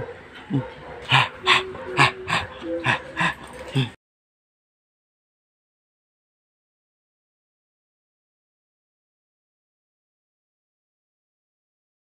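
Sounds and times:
dog whining: 0:00.0 - 0:04.0.

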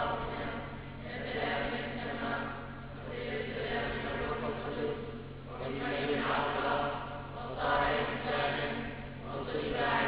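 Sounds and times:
many voices singing a chant: 0:00.0 - 0:10.0.

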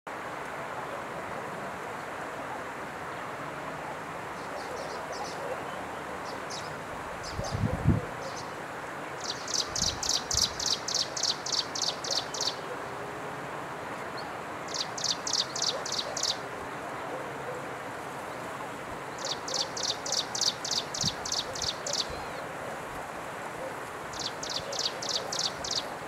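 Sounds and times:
steady background hiss: 0:00.1 - 0:26.0.

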